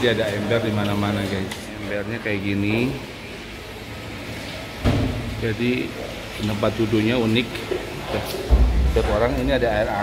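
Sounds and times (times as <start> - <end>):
loud thump: 4.8 - 5.4.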